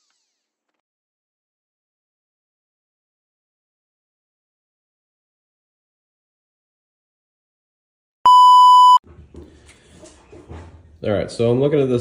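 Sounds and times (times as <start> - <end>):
high test-tone beep: 8.3 - 9.0.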